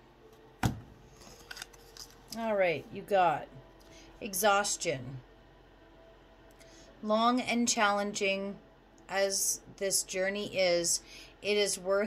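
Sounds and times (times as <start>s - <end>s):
cards being shuffled: 1.1s - 2.4s.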